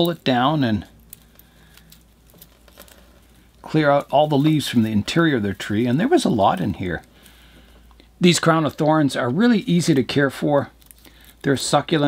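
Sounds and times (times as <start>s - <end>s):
dry leaves crinkling: 0.0s - 12.0s.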